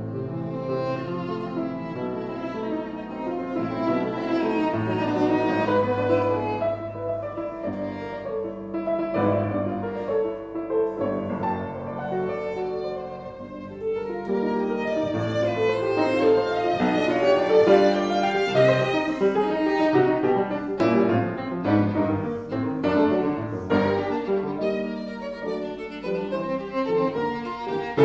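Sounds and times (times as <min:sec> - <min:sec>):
piano accompaniment: 0:00.0 - 0:28.0
violin melody: 0:00.0 - 0:28.0.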